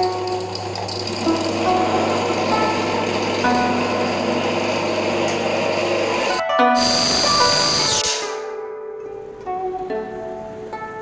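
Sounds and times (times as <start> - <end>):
electric grain grinder running: 0.0 - 8.2
plucked-string background music: 0.0 - 11.0.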